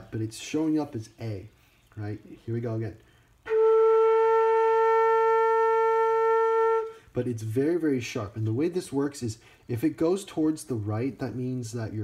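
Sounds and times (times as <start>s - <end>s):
flute holding steady note: 3.4s - 7.2s.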